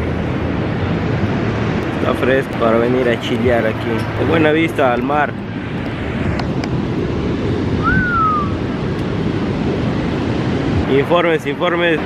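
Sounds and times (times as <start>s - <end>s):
ocean surf breaking: 0.0s - 12.0s
short gliding whistle: 7.8s - 8.6s.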